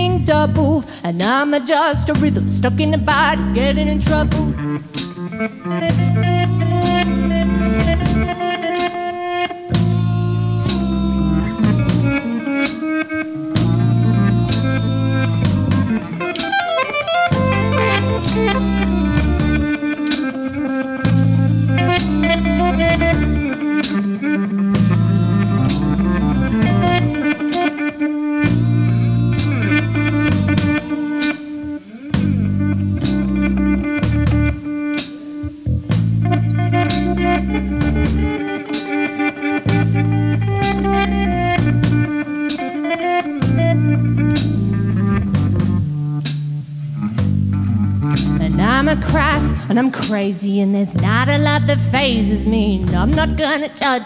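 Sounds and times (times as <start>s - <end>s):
bass line: 0.0s - 0.8s, 1.9s - 38.6s, 39.6s - 53.6s
electric guitar: 0.0s - 54.0s
drum kit: 4.0s - 9.0s, 9.7s - 50.3s, 51.0s - 54.0s.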